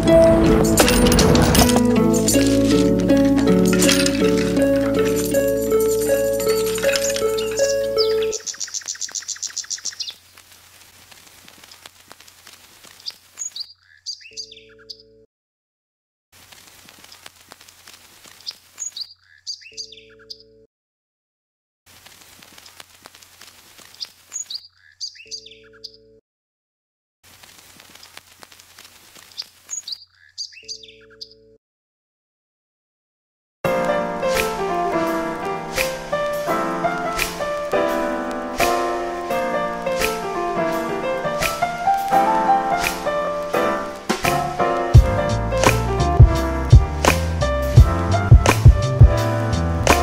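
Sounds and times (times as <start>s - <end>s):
background music: 0.0s - 8.4s, 33.7s - 50.0s
bird chirping trill: 2.0s - 10.2s, 13.0s - 15.3s, 18.4s - 20.7s, 24.0s - 26.2s, 29.3s - 31.6s
short bird chirps: 7.3s - 10.2s, 13.0s - 15.1s, 18.4s - 20.6s, 23.9s - 26.1s, 29.2s - 31.5s.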